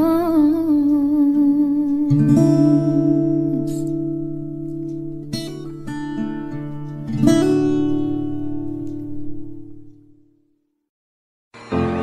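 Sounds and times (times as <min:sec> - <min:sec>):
soft instrumental accompaniment: 0:11.6 - 0:12.0.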